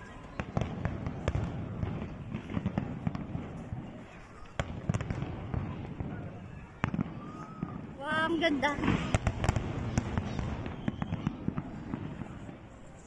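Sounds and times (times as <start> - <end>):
fireworks bangs and crackles: 0.0 - 13.0.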